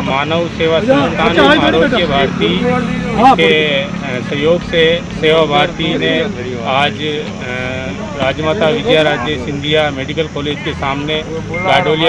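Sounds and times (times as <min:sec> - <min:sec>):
man speaking into a microphone: 0:00.0 - 0:12.0
steady low hum: 0:00.1 - 0:12.0.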